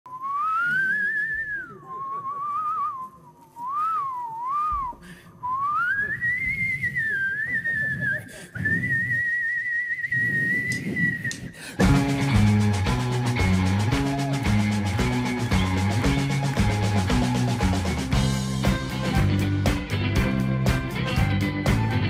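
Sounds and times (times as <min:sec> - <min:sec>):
whistled melody: 0:00.1 - 0:19.6.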